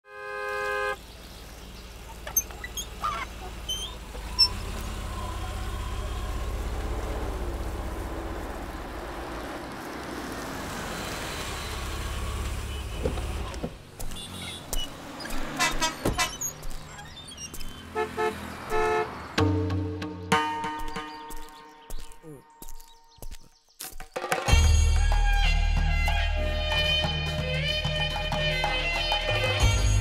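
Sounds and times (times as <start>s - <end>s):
motor vehicle running: 0.3s - 23.4s.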